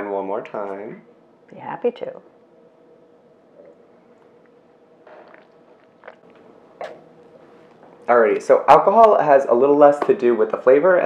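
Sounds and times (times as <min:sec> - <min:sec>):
person sipping and swishing wine: 0:03.5 - 0:08.1.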